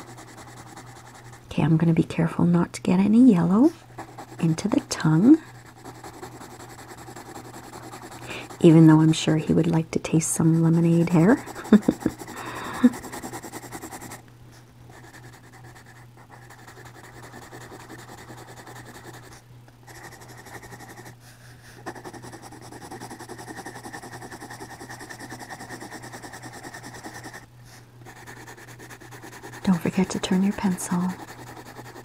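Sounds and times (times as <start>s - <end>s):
pencil scratching on paper: 0.0s - 1.4s, 4.0s - 9.6s, 10.3s - 14.2s, 14.9s - 32.0s
steady low hum: 0.0s - 32.0s.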